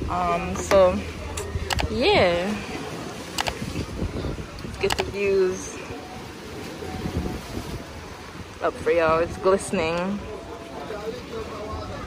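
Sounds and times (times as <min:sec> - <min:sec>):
wind on microphone: 0:00.0 - 0:10.3
waves washing: 0:00.0 - 0:12.0.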